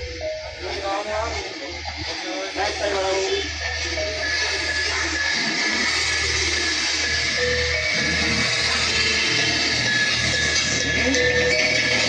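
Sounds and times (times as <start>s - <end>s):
music with deep bass from speaker: 0.0s - 12.0s.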